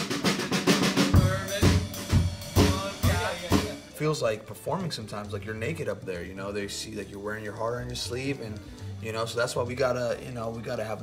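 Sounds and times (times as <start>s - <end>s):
pitched band instruments: 0.0s - 10.9s
drum kit playing: 0.0s - 11.0s.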